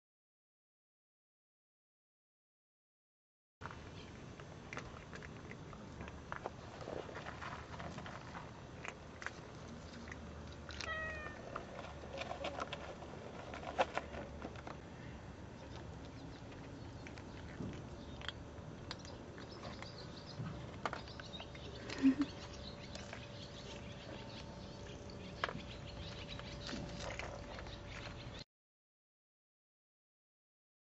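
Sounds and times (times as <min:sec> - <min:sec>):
cats eating from a plate: 0:03.6 - 0:28.4
kitten meowing: 0:10.8 - 0:11.4.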